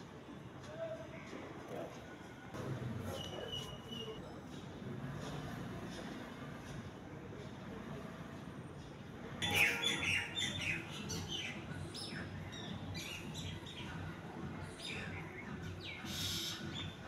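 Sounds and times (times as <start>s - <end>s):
small birds chirping: 9.4s - 17.0s.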